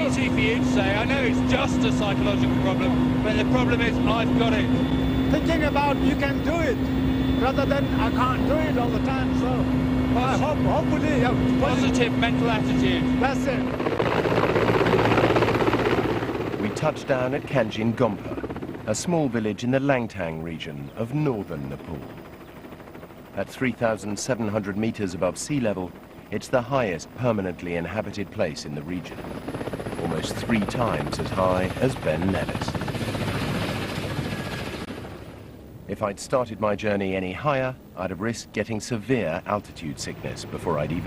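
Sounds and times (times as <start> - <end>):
helicopter engine hum: 0.0 - 36.0, 39.0 - 41.0
helicopter rotor chop: 0.0 - 36.2, 38.2 - 41.0.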